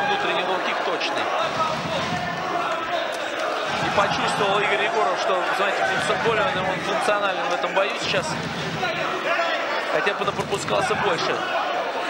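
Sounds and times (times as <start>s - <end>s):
arena crowd noise: 0.0s - 12.0s
man commentating: 0.0s - 12.0s.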